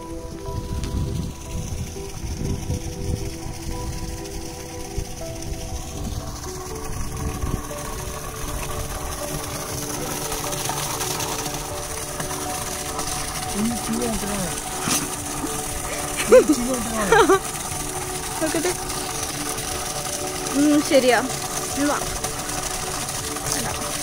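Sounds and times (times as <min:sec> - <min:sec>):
music of long held notes: 0:00.0 - 0:24.0.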